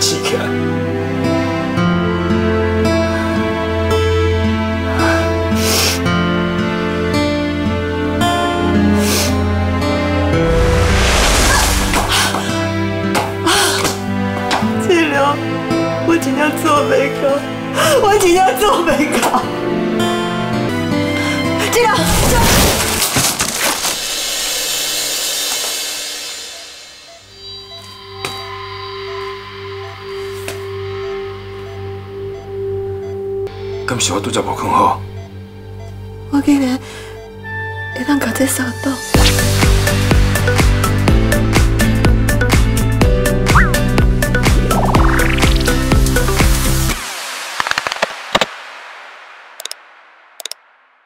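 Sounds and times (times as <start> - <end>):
dramatic background music: 0.0 - 48.5.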